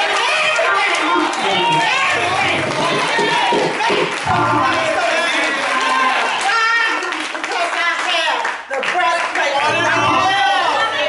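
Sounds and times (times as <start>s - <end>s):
congregation calling out: 0.0s - 7.0s, 9.6s - 11.0s.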